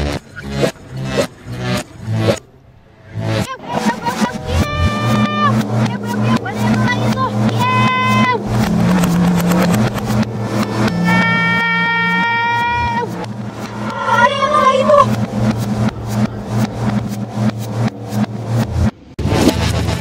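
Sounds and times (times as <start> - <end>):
held electronic tone: 3.1 - 18.7
warbling voice-like sound: 3.4 - 18.0
rapid clicking: 3.8 - 19.0.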